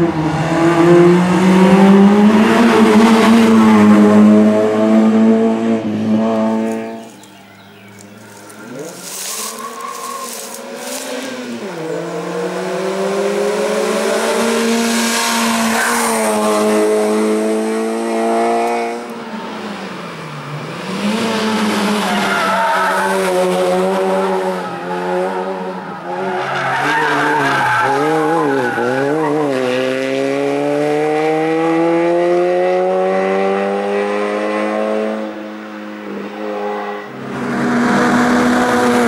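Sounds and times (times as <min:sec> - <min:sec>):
race car engine revving: 0:00.0 - 0:07.1, 0:08.2 - 0:35.4.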